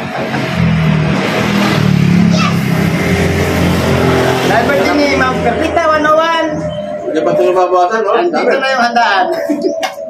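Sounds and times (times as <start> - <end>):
loud vehicle engine running: 0.0 - 8.0
men talking: 4.0 - 10.0.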